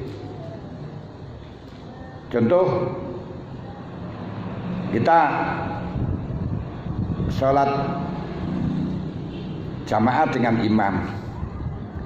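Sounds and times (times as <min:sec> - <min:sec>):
man speaking: 0:02.3 - 0:03.2, 0:09.8 - 0:11.2
low rumble of passing vehicle: 0:03.0 - 0:12.0.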